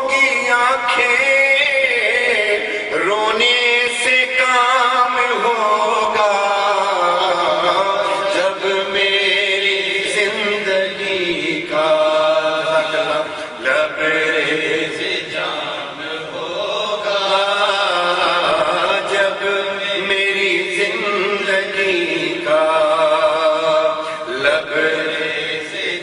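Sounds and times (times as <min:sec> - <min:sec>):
man chanting into a microphone: 0:00.0 - 0:26.0.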